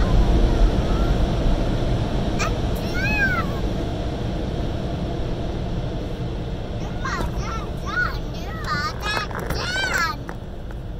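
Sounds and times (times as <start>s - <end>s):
steady low rumble: 0.0s - 10.9s.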